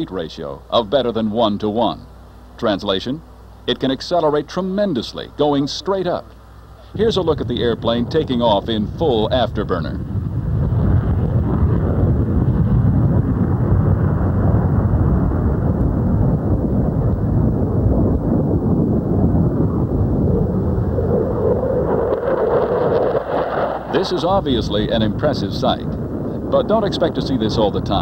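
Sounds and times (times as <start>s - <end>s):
jet engines deep rumble: 0.0s - 28.0s.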